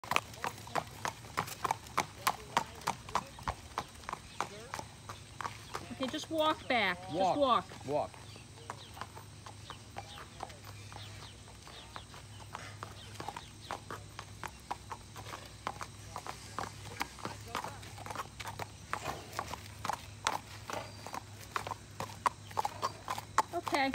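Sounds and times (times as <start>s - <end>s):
horse hooves clip-clopping on pavement: 0.0s - 23.9s.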